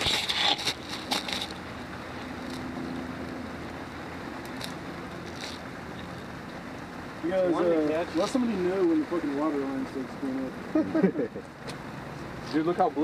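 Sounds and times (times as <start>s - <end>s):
campfire crackling and popping: 0.0s - 7.0s.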